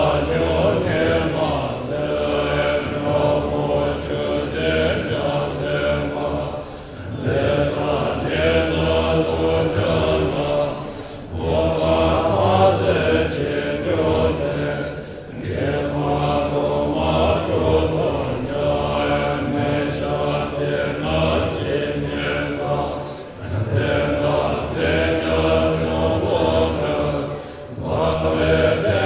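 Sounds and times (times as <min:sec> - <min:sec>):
monks chanting in low voices: 0:00.0 - 0:29.0.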